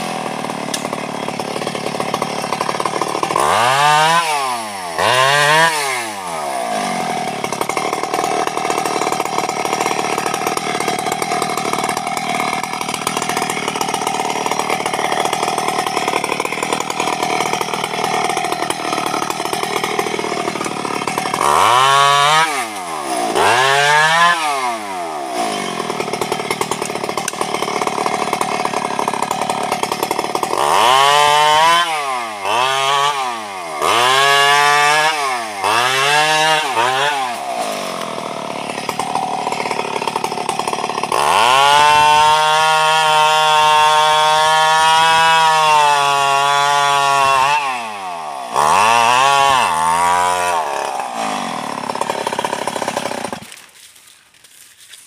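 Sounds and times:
chainsaw idling and revving: 0.0s - 55.0s.

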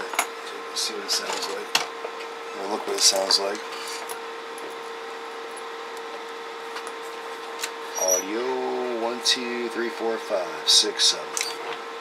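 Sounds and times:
electrical hum and whir: 0.0s - 12.0s.

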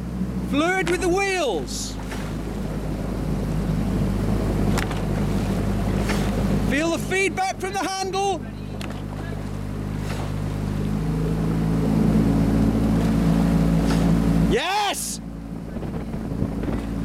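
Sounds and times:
boat motor running: 0.0s - 17.0s
person shouting: 14.5s - 15.2s.

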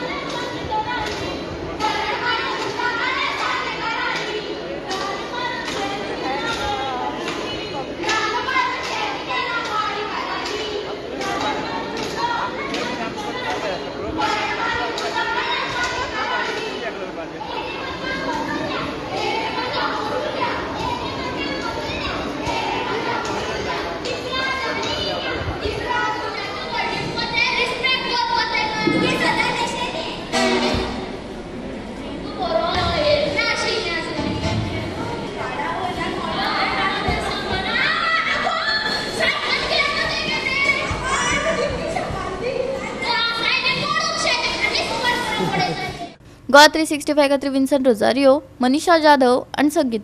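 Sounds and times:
children's voices: 0.0s - 50.0s.

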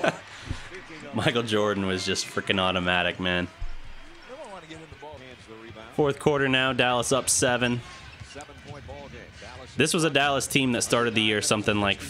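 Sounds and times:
man talking on television: 0.0s - 12.0s.

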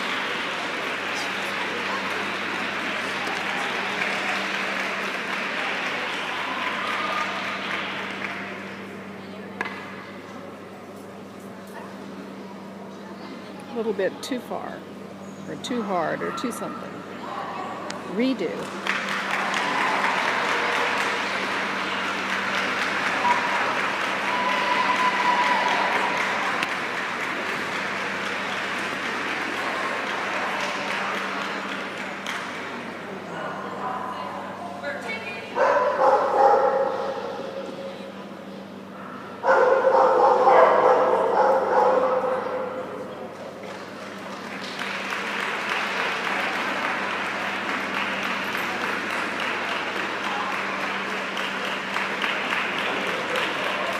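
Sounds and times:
people chattering in a hall: 0.0s - 53.9s
steady low hum: 0.0s - 53.9s.

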